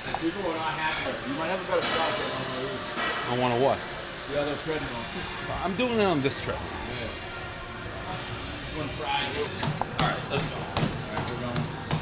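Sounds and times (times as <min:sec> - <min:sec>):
gym background noise: 0:00.0 - 0:12.0
indistinct voices talking: 0:04.8 - 0:12.0.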